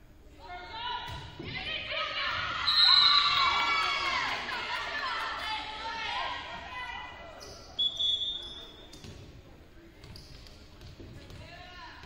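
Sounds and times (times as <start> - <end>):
referee's whistle: 2.6 - 3.6, 7.6 - 9.0
volleyball bouncing on gym floor: 10.0 - 12.0.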